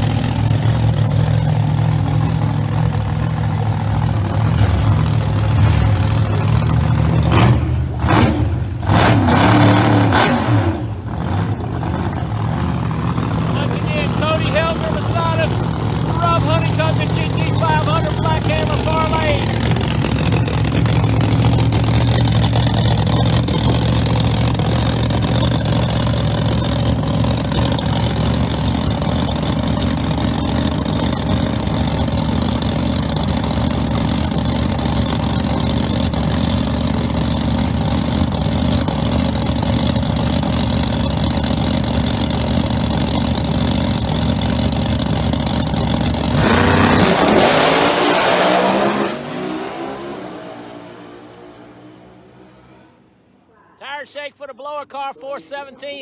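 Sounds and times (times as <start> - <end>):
drag car engines idling loudly: 0.0 - 47.9
drag cars launching full throttle: 0.0 - 53.4.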